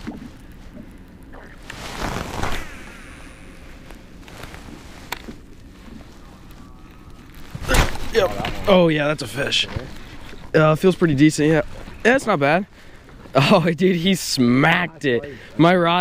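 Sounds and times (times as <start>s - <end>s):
clothing rustling and handling: 1.6s - 2.8s, 3.6s - 12.2s.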